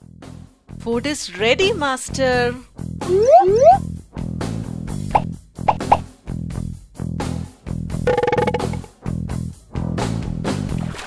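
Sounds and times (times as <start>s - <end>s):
background music with plucked bass: 0.0s - 11.0s
cartoon plop sound effects: 3.0s - 3.8s, 5.7s - 6.0s, 8.1s - 8.9s.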